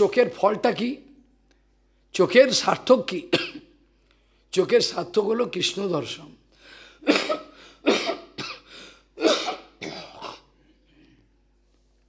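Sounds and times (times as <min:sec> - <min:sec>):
man coughing: 0:03.3 - 0:03.8, 0:07.0 - 0:11.2.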